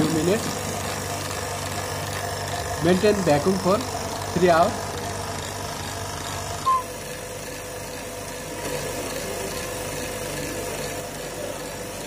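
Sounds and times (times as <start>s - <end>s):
vacuum pump humming: 0.0s - 12.0s.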